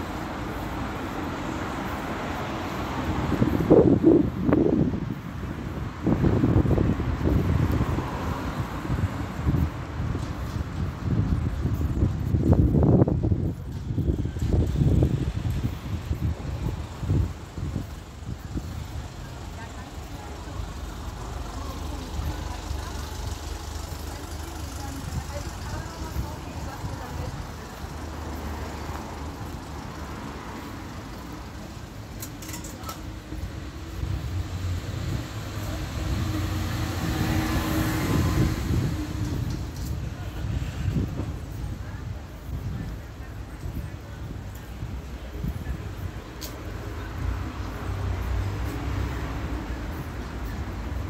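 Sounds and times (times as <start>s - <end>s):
indistinct voices of passers-by: 0.0s - 51.0s
road traffic going by: 0.0s - 51.0s.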